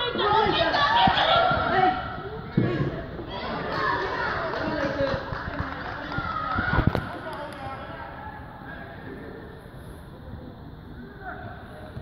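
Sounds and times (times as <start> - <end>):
children calling and chattering: 0.0 - 5.2.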